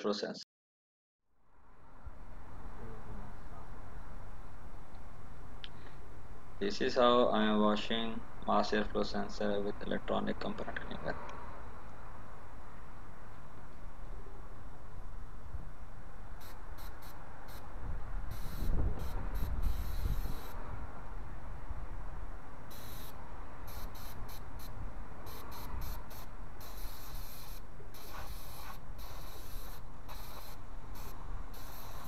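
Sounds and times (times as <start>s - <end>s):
aerosol spray hissing: 16.4s - 17.6s, 18.3s - 20.6s, 22.7s - 23.1s, 23.7s - 24.7s, 25.3s - 32.0s.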